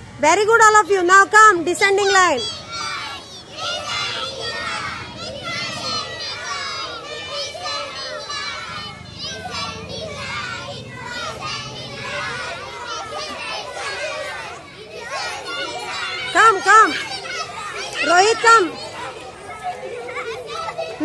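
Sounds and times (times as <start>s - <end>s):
children chattering: 0.0s - 21.0s.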